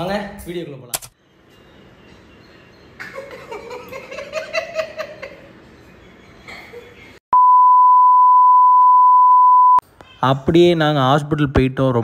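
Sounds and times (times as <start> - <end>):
electronic beep tone: 7.4 - 9.8.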